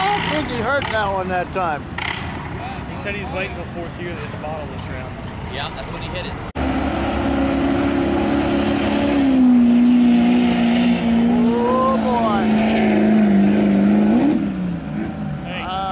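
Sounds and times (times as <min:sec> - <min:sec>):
diesel engine revving: 0:00.0 - 0:01.2, 0:05.6 - 0:15.9.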